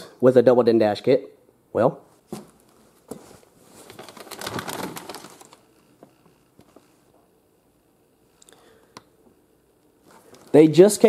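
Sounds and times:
plastic bag crinkling: 3.1s - 5.8s, 10.0s - 10.6s.

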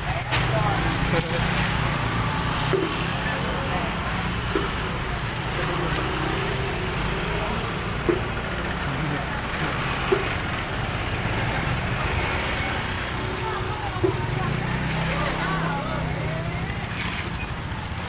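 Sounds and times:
crowd chatter: 0.0s - 18.0s
motor scooters riding past: 0.0s - 18.0s.

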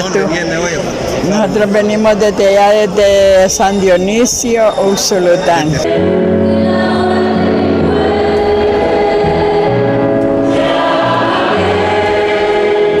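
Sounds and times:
choir singing a hymn: 4.2s - 13.0s.

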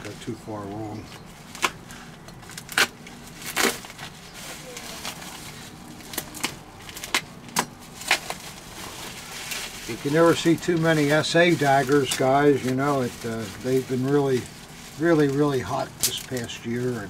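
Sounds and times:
bubble wrap crinkling: 0.0s - 17.0s.

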